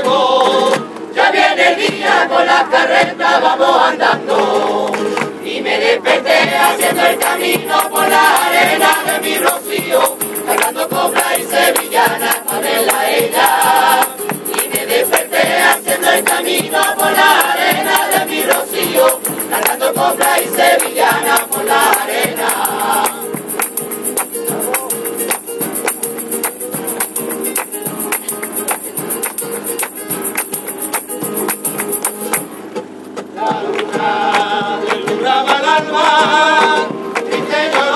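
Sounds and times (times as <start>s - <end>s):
choir singing in chorus: 0.0s - 24.3s, 33.3s - 37.9s
rhythmic hand-clapping: 0.3s - 3.4s, 4.0s - 37.9s
small percussion: 6.1s - 37.9s.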